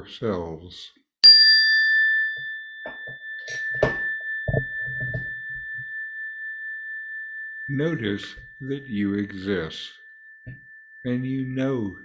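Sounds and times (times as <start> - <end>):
meditation bell ringing: 1.2 - 12.0.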